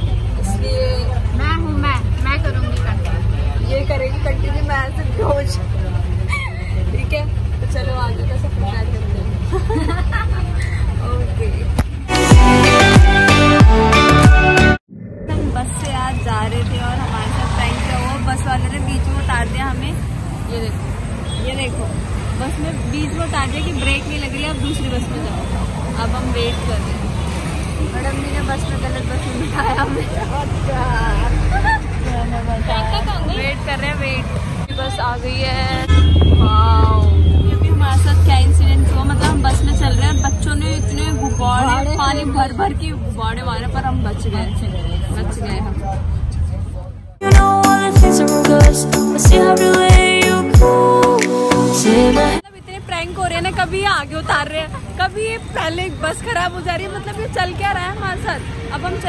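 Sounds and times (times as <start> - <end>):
bus engine rumble: 0.0 - 13.0, 14.8 - 47.6
people talking and laughing: 0.4 - 12.2, 27.8 - 34.2, 53.3 - 59.0.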